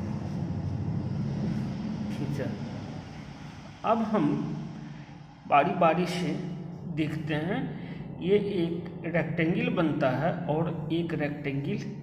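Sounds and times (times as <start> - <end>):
low background drone: 0.0 - 12.0.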